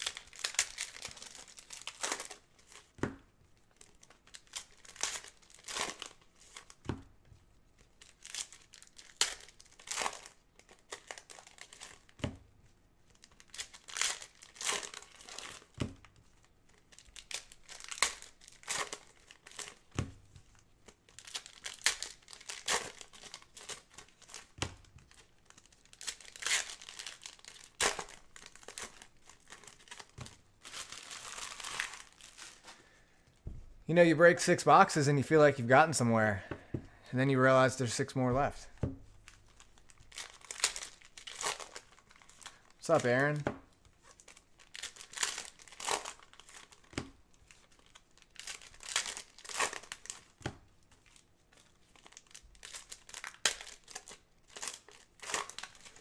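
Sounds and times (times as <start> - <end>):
foil wrappers crinkling and tearing: 0.0 - 6.8, 7.6 - 12.2, 13.0 - 33.4, 37.4 - 56.0
soft knocks of packs handled: 32.6 - 33.9.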